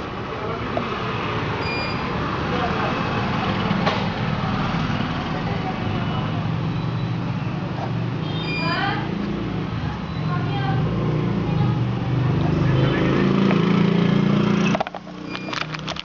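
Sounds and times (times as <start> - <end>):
faint distant voices: 0.0 - 14.6.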